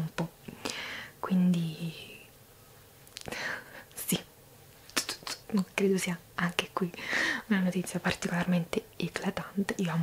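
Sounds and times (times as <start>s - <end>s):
woman whispering: 1.2s - 2.3s, 5.0s - 10.0s
mouth clicks: 4.9s - 5.8s.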